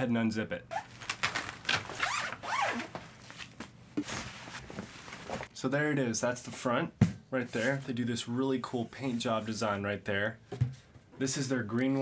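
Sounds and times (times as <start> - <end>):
zipper being pulled open: 0.7 - 3.0.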